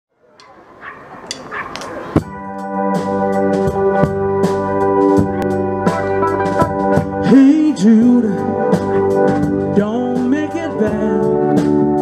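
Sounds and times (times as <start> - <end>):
outdoor background noise: 0.1 - 5.5.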